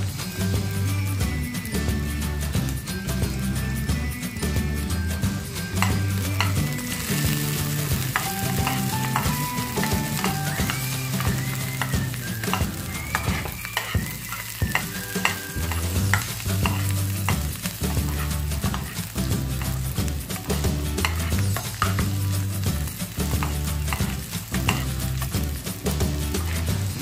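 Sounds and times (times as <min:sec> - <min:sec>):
background music: 0:00.0 - 0:27.0
onion sizzling in oil: 0:00.0 - 0:27.0
spatula scraping a pan: 0:05.8 - 0:25.3.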